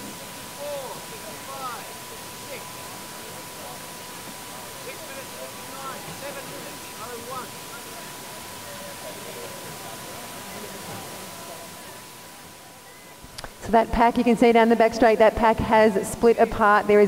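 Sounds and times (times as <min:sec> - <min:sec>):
thin steady high tone: 0:00.0 - 0:13.3
faint distant voices: 0:00.0 - 0:13.7
steady hiss: 0:00.0 - 0:17.0.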